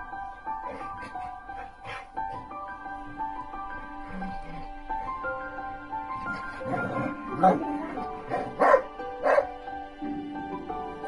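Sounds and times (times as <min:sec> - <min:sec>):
background music: 0:00.0 - 0:11.0
dog barking: 0:08.3 - 0:09.5.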